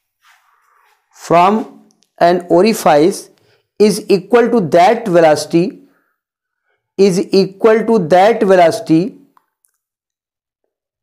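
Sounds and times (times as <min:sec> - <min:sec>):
man speaking: 0:01.2 - 0:05.9, 0:07.0 - 0:09.3.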